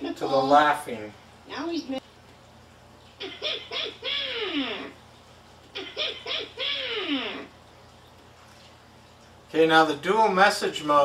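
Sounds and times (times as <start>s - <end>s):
faint hum: 0.0s - 11.0s.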